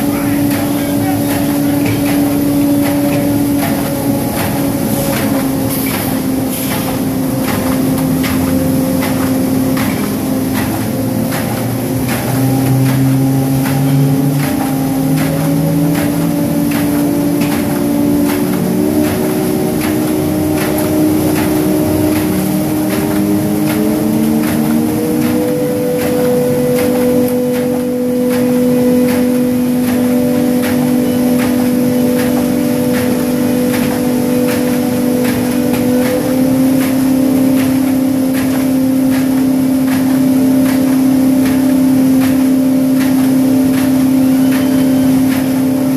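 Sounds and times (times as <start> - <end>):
machine hum with held tones: 0.0 - 45.9.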